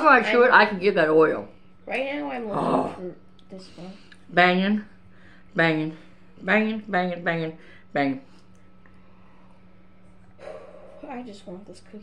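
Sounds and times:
person breathing: 5.1 - 6.3, 8.9 - 11.2
muffled hum into glass: 8.8 - 12.0.

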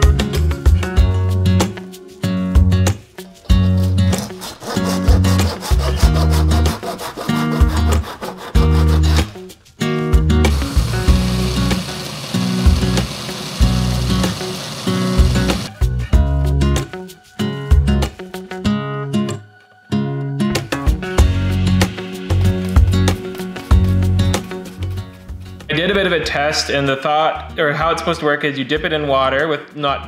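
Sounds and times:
hand tool rasping: 3.6 - 9.4
acoustic guitar music: 8.6 - 25.6.

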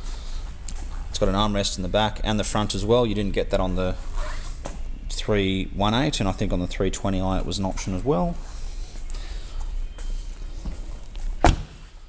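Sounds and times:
car door shutting: 10.6 - 11.9.

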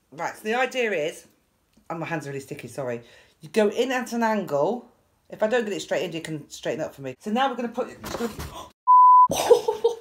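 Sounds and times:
censor bleep: 8.9 - 9.3.

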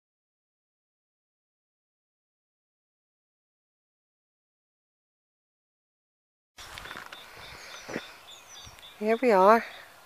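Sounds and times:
birds singing: 6.6 - 10.0
outdoor background noise: 6.6 - 10.0.

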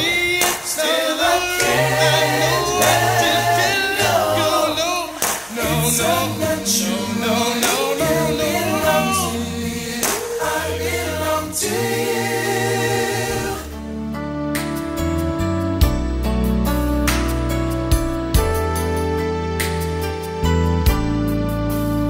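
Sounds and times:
a cappella group singing: 0.0 - 14.0
low bass voice: 1.6 - 5.0, 5.6 - 10.0.

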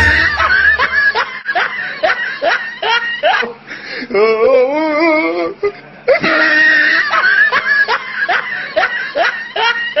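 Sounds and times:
man laughing in high squeals: 0.0 - 10.0.

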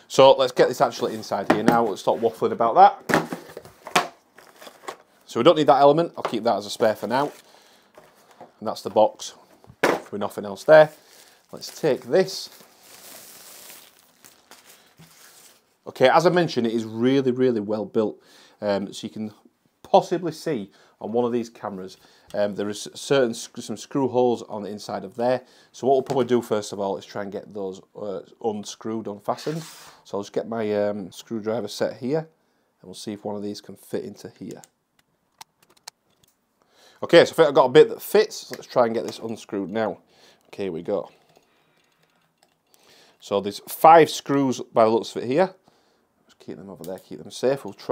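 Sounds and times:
packaging wrap rustling: 3.3 - 5.3, 6.8 - 8.4, 10.3 - 15.8.

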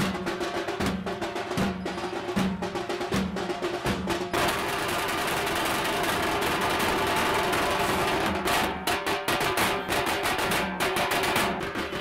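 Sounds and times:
drums beating with sticks: 0.0 - 12.0.

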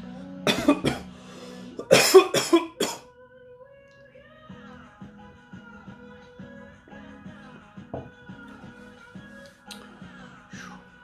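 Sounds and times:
man coughing hard: 0.5 - 1.1, 1.8 - 3.0.

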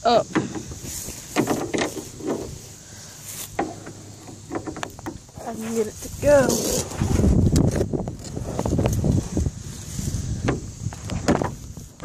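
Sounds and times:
phone microphone handling noise: 0.4 - 12.0.

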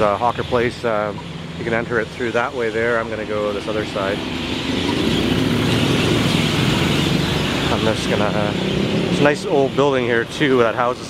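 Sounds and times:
bus engine hum: 0.0 - 11.0
road traffic noise: 0.0 - 11.0.

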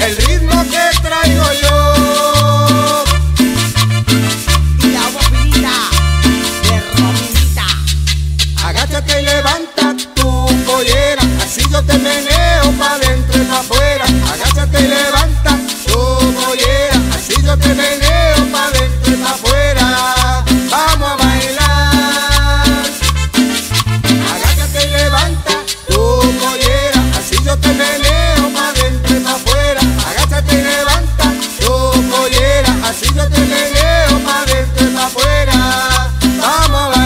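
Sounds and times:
cumbia band playing: 0.0 - 37.0.

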